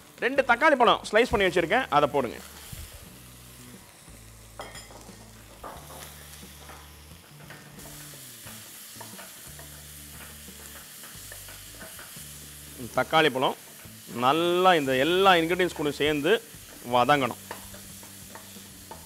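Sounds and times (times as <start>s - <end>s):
soft sizzle of frying: 0.0s - 19.0s.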